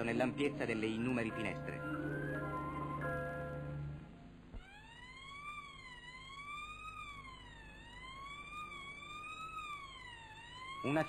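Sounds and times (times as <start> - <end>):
ambulance siren wailing: 0.0 - 11.0.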